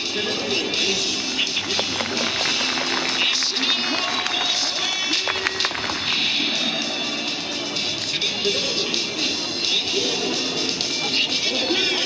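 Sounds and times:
music over stadium speakers: 0.0s - 12.0s.

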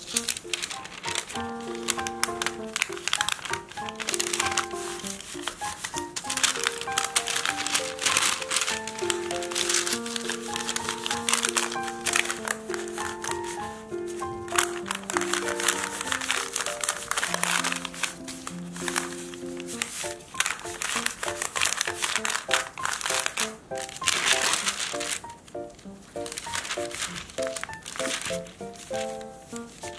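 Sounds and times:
background music simple melody: 0.0s - 29.9s
baking paper crinkling: 0.0s - 29.9s.

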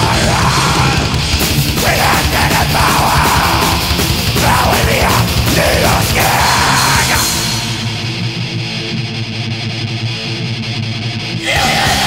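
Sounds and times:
distorted electric guitar riff: 0.0s - 12.0s.

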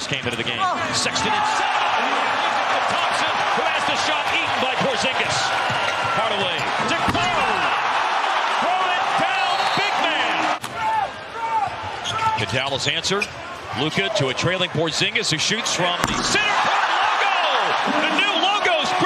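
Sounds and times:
crowd roar: 0.7s - 12.4s, 13.6s - 19.0s
basketball bouncing: 16.0s - 16.8s.

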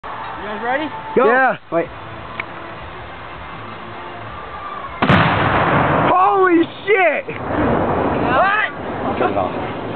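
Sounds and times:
explosive blast: 5.0s - 6.4s, 7.4s - 9.0s.

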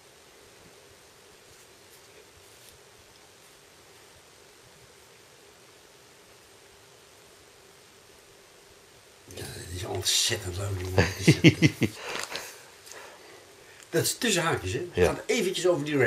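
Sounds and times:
faint hum: 0.0s - 16.0s
room tone hiss: 0.0s - 16.0s.

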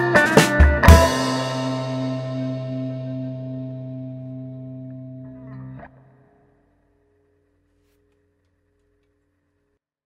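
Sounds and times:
guitar chord ringing: 0.0s - 7.7s.

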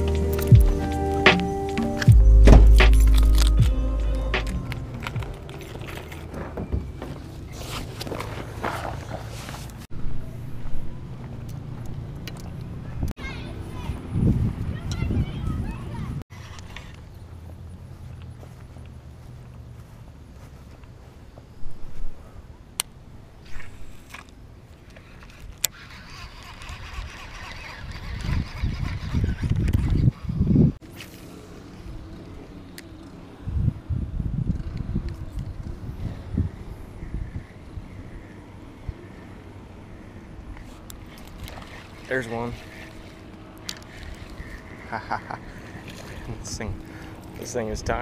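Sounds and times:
handling noise: 4.4s - 9.8s
wind rumbling on microphone: 4.7s - 19.9s, 21.0s - 48.0s
fishing reel clicks: 23.5s - 30.1s, 40.9s - 47.5s.

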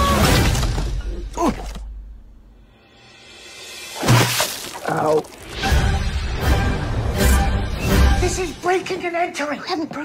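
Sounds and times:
music: 2.5s - 4.2s, 5.4s - 9.0s.

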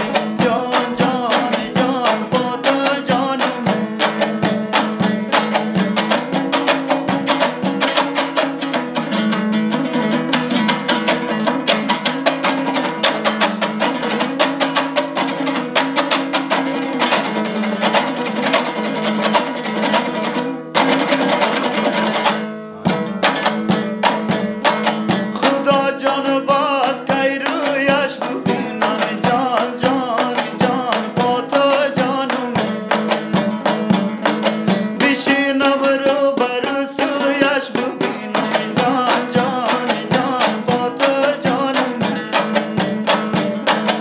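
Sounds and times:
person singing: 0.0s - 9.1s, 25.1s - 44.0s
lute strummed fast: 0.0s - 44.0s.

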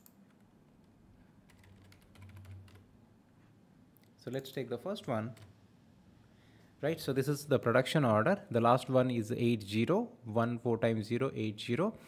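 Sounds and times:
computer keyboard clicking: 1.5s - 2.8s, 5.3s - 5.5s.

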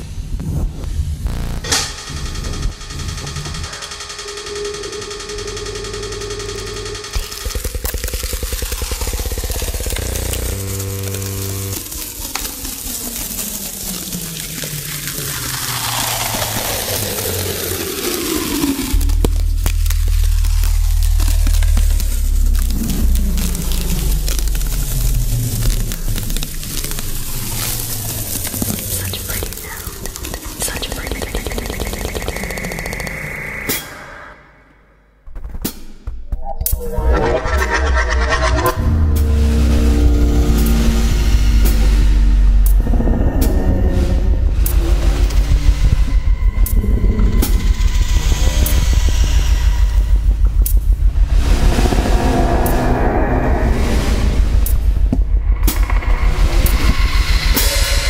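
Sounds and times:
dense electronic music: 0.0s - 34.5s, 36.3s - 58.0s
heavy bass: 0.0s - 34.8s, 35.4s - 58.0s
long falling synth glide: 36.6s - 43.0s.

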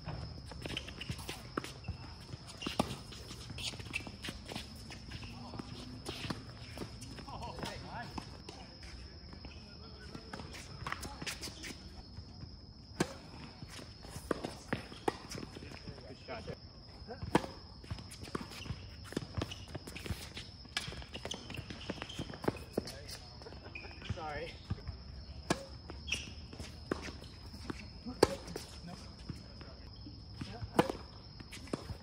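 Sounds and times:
tennis balls struck by racquets: 12.9s - 15.8s, 24.2s - 32.0s.

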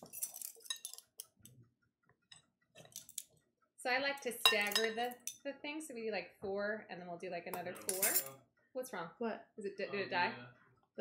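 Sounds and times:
spoon scraping glass bowl: 0.0s - 1.1s, 4.4s - 5.4s, 7.6s - 8.3s.

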